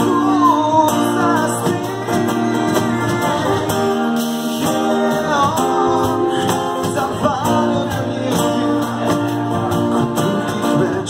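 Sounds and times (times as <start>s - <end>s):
strummed acoustic guitars: 0.0s - 11.0s
voices singing: 0.0s - 11.0s.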